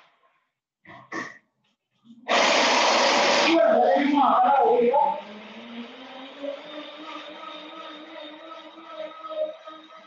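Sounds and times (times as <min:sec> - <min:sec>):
blender crushing ice: 0:02.3 - 0:03.7.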